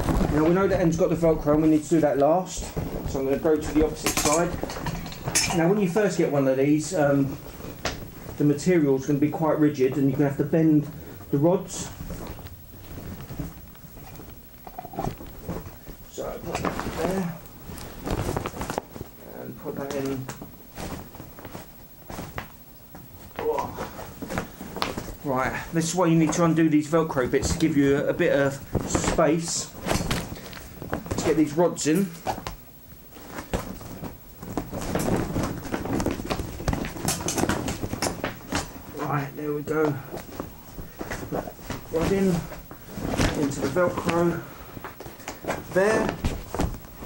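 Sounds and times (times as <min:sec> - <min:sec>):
nylon fabric rustling: 0:00.0 - 0:47.0.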